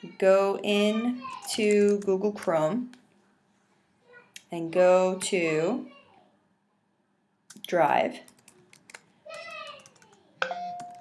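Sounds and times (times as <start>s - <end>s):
computer keyboard keys clicking: 8.3s - 9.0s, 9.8s - 10.2s, 10.8s - 11.0s.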